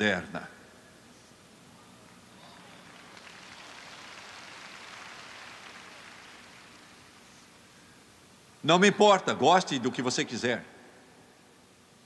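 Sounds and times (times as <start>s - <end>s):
congregation applauding: 2.4s - 7.6s.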